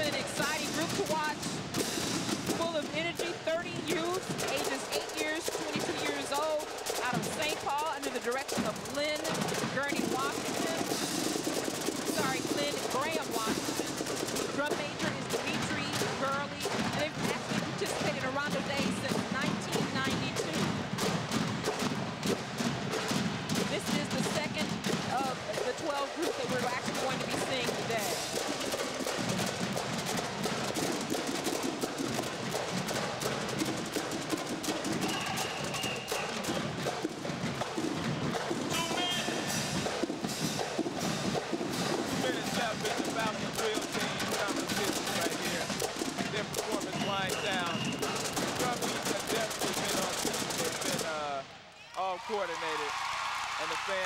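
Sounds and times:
cymbals: 0.0 - 51.5
snare drums: 0.0 - 54.0.

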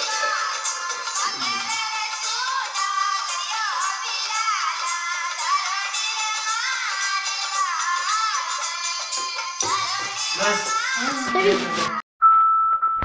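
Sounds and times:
high-pitched voice singing: 0.0 - 8.6, 9.2 - 12.0.

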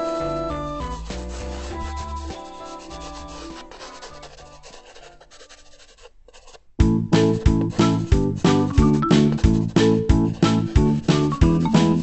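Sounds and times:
background music: 0.0 - 4.7, 6.8 - 12.0
felt-tip pen scratching on paper: 0.0 - 6.7, 7.3 - 12.0.

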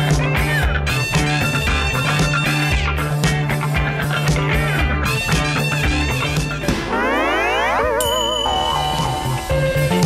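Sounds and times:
held steady tones: 6.8 - 9.9
cartoon slide whistle glide: 6.9 - 9.3.

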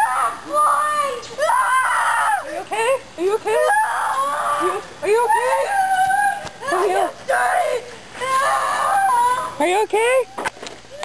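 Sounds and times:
young voice shrieking: 0.0 - 2.6, 3.5 - 9.7
young voice yelping: 3.4 - 9.8.

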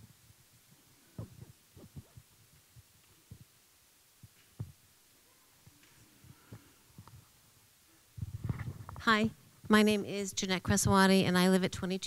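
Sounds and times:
microphone handling thumps: 1.2 - 3.5, 4.2 - 4.8, 8.2 - 9.8.

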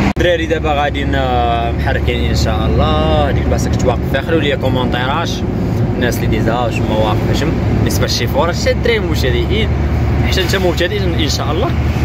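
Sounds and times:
lorry engine and road drone: 0.0 - 12.0
person's voice: 0.1 - 11.8.

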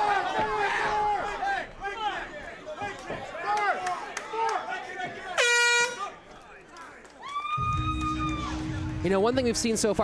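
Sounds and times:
air horn blaring: 5.4 - 6.1.

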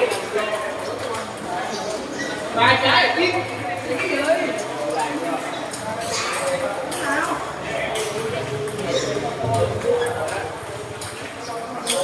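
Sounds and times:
murmur of voices: 0.0 - 12.0
table tennis balls clicking: 4.0 - 12.0.

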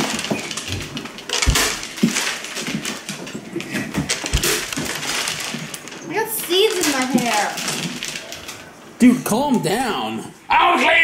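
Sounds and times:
pumpkin thudding on wooden table: 1.4 - 2.1, 4.3 - 4.9.

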